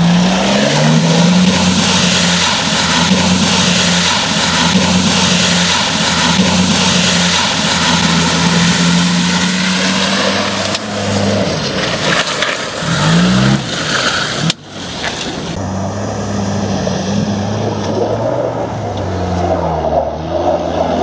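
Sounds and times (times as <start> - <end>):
engine running under load: 0.0 - 21.0
water splashing and surging: 0.0 - 21.0.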